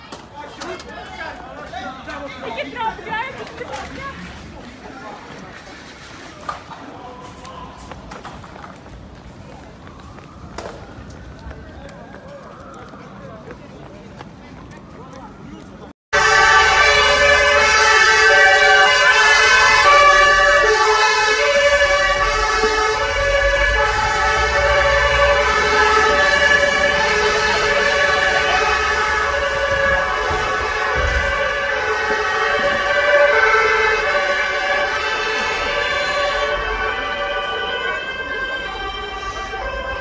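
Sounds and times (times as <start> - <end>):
two-tone emergency sirens: 9.4 - 13.6, 14.6 - 40.0.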